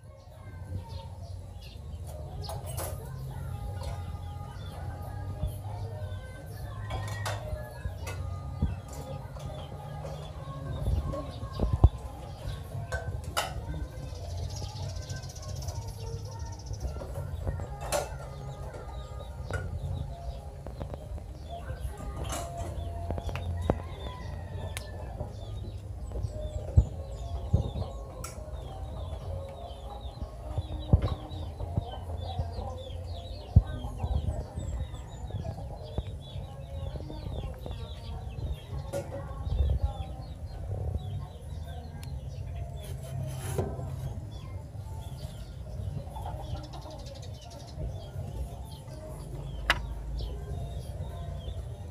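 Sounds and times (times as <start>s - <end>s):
birds clucking: 0.2s - 51.9s.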